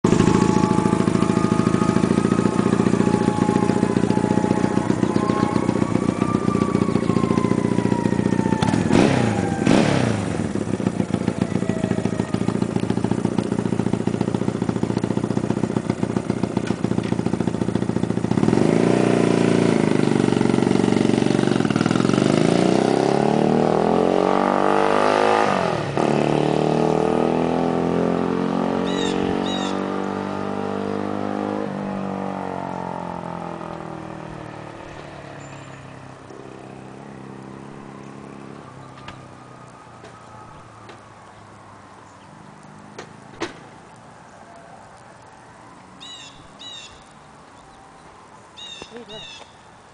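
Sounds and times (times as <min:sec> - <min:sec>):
motorcycle engine idling: 0:00.0 - 0:22.4
motorcycle revving through gears: 0:00.0 - 0:40.4.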